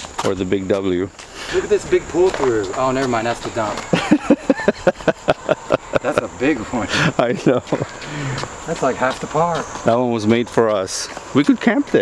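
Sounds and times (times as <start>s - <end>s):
man laughing: 3.8s - 8.4s.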